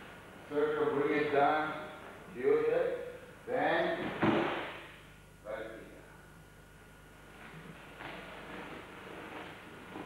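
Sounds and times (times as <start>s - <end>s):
body thud on mat: 4.0s - 4.8s.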